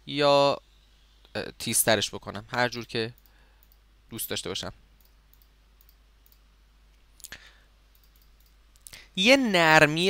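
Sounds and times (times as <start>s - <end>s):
computer mouse clicks: 3.2s - 3.8s, 5.0s - 6.5s, 7.2s - 9.0s.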